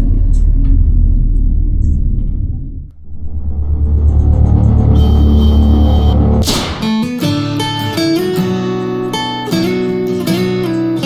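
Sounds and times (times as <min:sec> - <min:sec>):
deep low rumbling logo effect: 0:00.0 - 0:06.8
dark music bed: 0:00.0 - 0:11.0.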